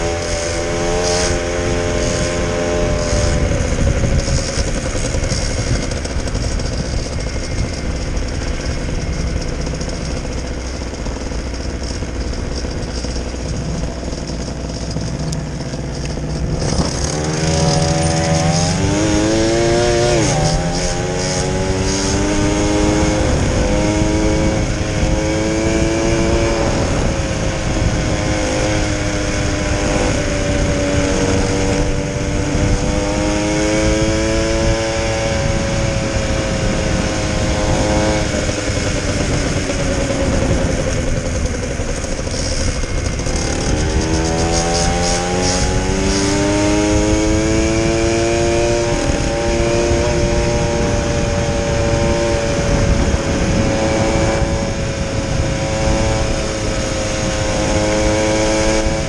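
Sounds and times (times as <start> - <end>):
scooter engine revving: 0.0 - 59.0.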